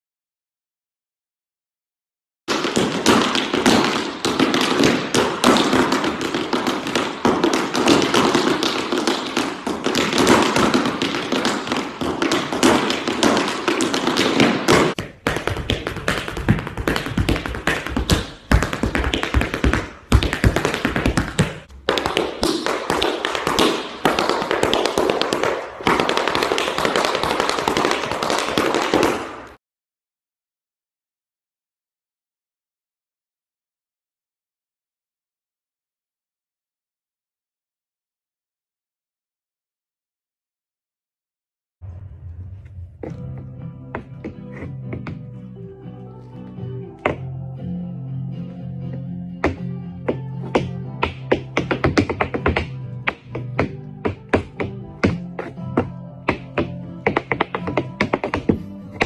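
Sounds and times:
tap shoes on hard floor: 0:02.5 - 0:29.6, 0:43.0 - 0:45.3, 0:47.0 - 0:47.2, 0:48.9 - 0:59.0.

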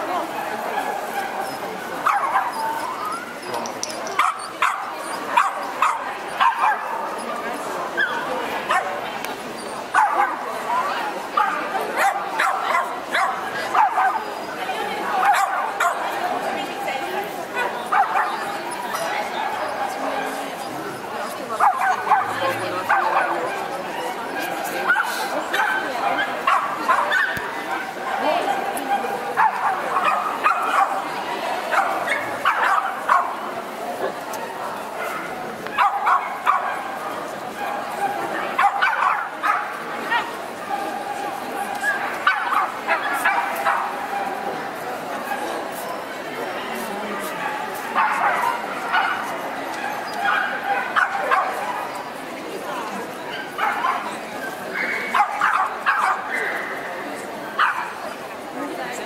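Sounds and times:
murmur of crowd voices: 0:00.0 - 0:59.0
dogs yipping and barking: 0:00.5 - 0:07.4, 0:09.6 - 0:10.4, 0:11.4 - 0:14.4, 0:28.2 - 0:33.4, 0:35.0 - 0:36.9, 0:37.7 - 0:40.3, 0:48.0 - 0:52.2, 0:53.4 - 0:56.8.

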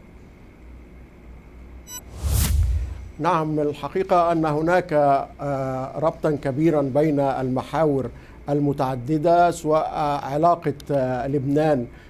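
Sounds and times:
faint background hiss: 0:00.0 - 0:12.0
steady low hum: 0:00.0 - 0:12.0
short high electronic blip: 0:01.9 - 0:03.2.

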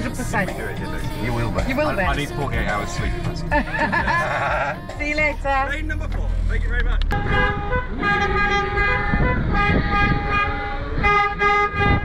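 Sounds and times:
man laughing: 0:03.1 - 0:04.9.

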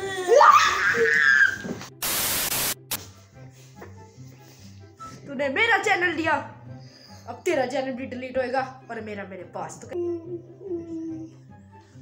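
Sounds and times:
child's high-pitched cry: 0:00.0 - 0:01.7, 0:10.0 - 0:11.4
burst of static hiss: 0:01.9 - 0:03.0.

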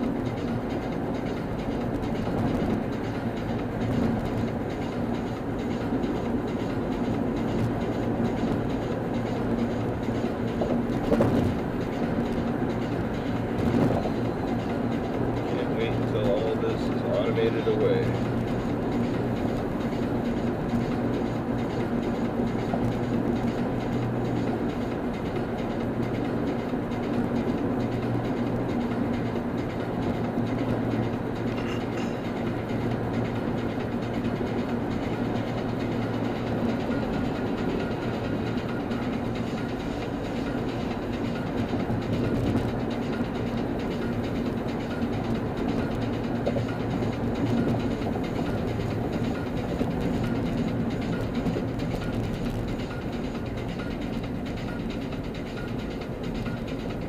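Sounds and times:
low engine hum: 0:00.0 - 0:57.0
tyre and road noise: 0:00.0 - 0:57.0.

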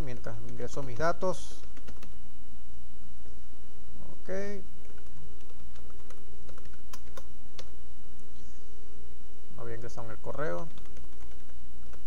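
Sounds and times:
keyboard typing: 0:00.0 - 0:02.2, 0:04.8 - 0:07.7, 0:10.5 - 0:12.0
low hum: 0:00.0 - 0:12.0.

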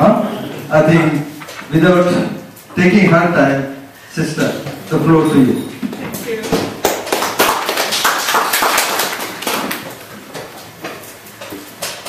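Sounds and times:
audience clapping: 0:06.7 - 0:10.3.

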